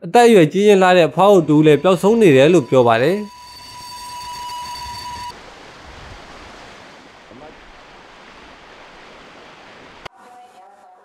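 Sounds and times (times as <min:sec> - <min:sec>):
electric train whine: 0:01.0 - 0:05.7.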